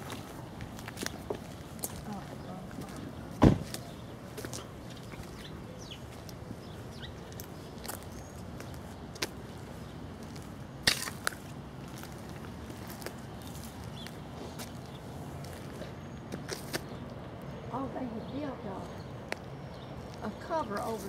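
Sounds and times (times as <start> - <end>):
footsteps: 0.0 - 5.5.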